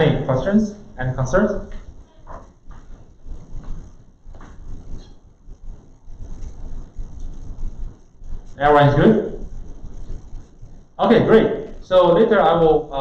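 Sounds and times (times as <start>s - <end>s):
faint small noises: 0.0s - 13.0s
steady low rumble: 0.0s - 13.0s.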